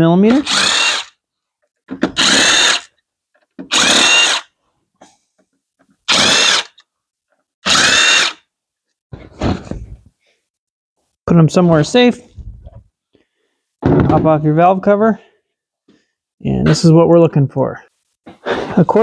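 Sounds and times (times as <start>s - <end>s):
cordless power driver running: 0.4s - 1.1s, 2.2s - 2.9s, 3.7s - 4.4s, 6.1s - 6.8s, 7.7s - 8.4s.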